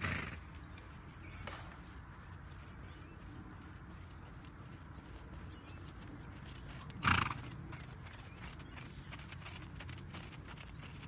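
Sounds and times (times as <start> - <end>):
horse snorting: 0.0 - 0.4, 6.9 - 7.6
horse trotting on sand: 0.0 - 11.0.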